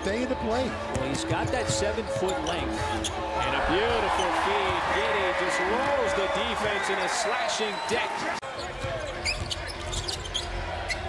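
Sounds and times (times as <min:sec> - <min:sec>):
sneakers squeaking on hardwood: 0:08.5 - 0:11.0.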